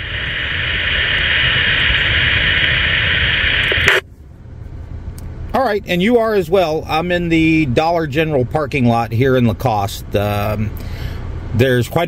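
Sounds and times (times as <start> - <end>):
radio static hissing: 0.0 - 4.0.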